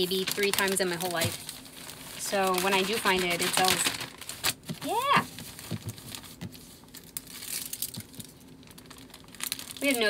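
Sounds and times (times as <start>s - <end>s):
plastic mailer crinkling: 0.0s - 10.0s.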